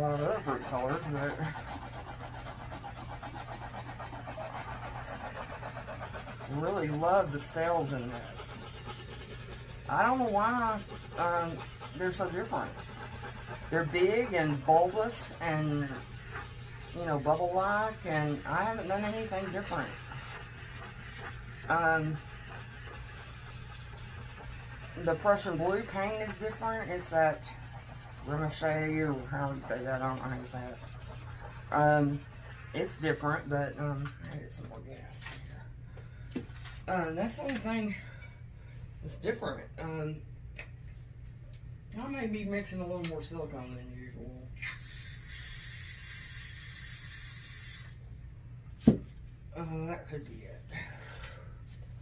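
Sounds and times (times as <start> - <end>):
butane torch hissing: 44.6 - 48.0.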